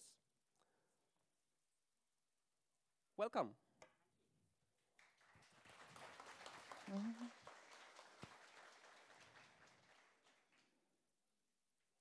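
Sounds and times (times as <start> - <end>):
faint audience applause: 5.0 - 10.8.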